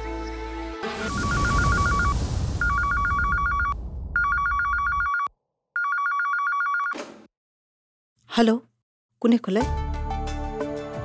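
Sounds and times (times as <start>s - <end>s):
telephone ringing: 1.2s - 7.0s.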